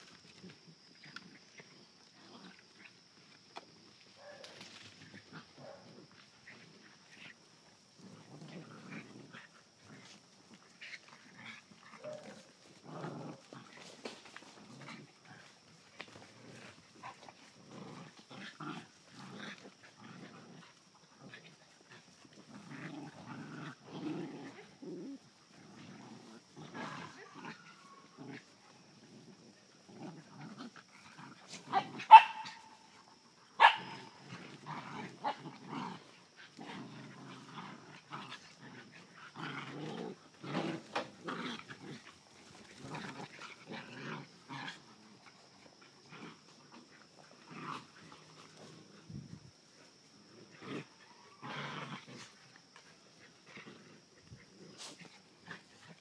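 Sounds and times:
puppies growling: 0.2s - 3.4s, 5.0s - 56.0s
sharp dog barks: 32.1s - 32.8s, 33.6s - 34.0s.

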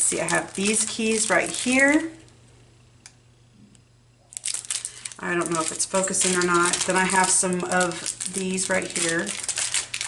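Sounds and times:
plastic bag crinkling: 0.0s - 2.2s, 4.3s - 10.0s.

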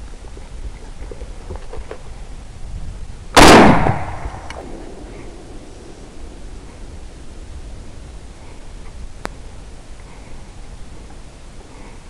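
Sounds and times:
loud rifle shot: 3.4s - 5.5s.

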